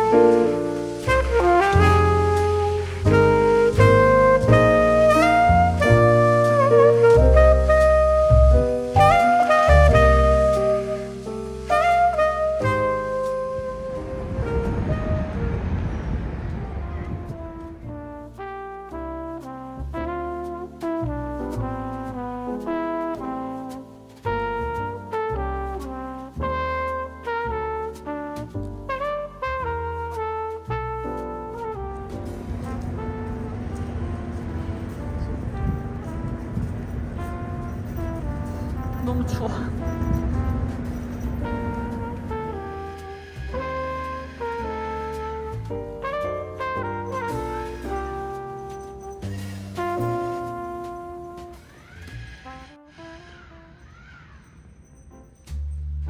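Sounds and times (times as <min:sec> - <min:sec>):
instrumental background music: 0:00.0 - 0:14.9, 0:17.4 - 0:51.8
street noise: 0:00.0 - 0:56.0.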